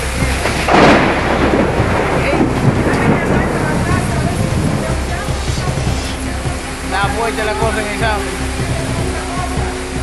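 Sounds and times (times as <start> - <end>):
heavy rain: 0.0 - 10.0
strong wind gusts: 0.0 - 10.0.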